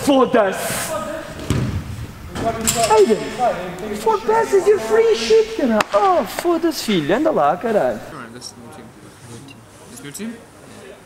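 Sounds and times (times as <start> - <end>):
footballers shouting: 0.4 - 8.1.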